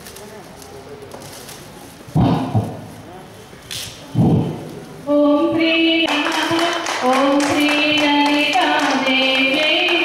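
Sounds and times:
foil gift wrap crackling: 0.0s - 2.0s.

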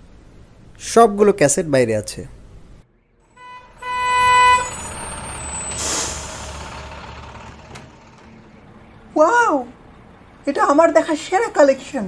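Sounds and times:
hissing whoosh: 4.7s - 8.2s.

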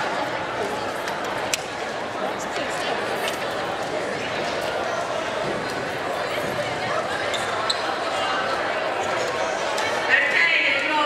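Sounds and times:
echoing chatter of voices: 0.0s - 11.0s.

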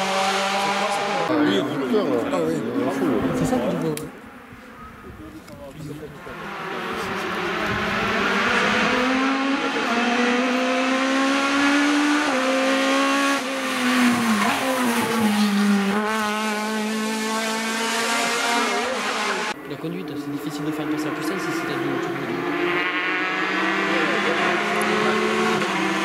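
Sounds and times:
car engine revving: 0.0s - 1.4s, 6.0s - 26.0s.

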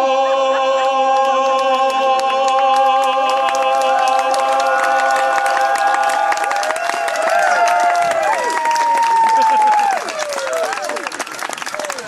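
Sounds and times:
audience clapping and cheering: 1.1s - 12.0s.

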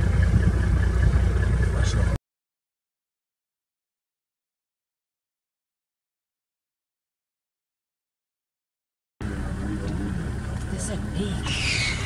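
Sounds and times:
vehicle engine idling: 0.0s - 2.2s, 9.2s - 12.0s.

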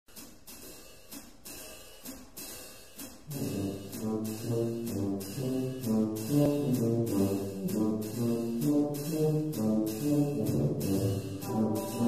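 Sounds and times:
cymbal ticking a steady beat: 0.1s - 12.0s
brass band playing: 3.3s - 12.0s
low brass bass line: 3.3s - 12.0s.

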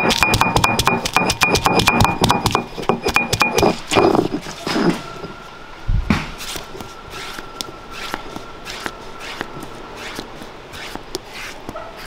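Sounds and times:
stone roller pounding on stone: 0.0s - 4.4s
stone rubbing strokes: 2.6s - 5.4s, 6.4s - 12.0s.

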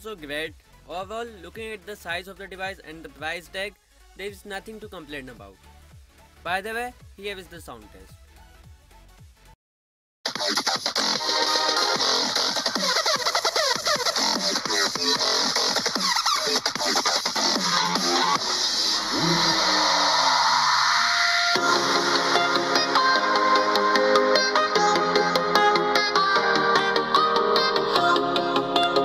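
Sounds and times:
electronic dance music from speaker: 0.0s - 9.5s, 10.3s - 29.0s.

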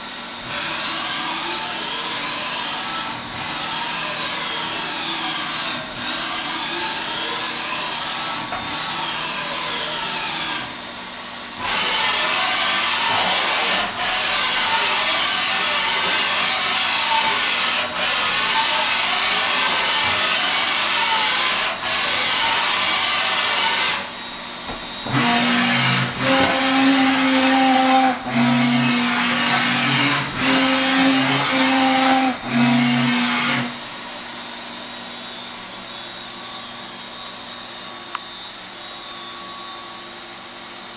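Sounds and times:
pitched machine whine: 0.0s - 11.0s, 11.6s - 40.9s.

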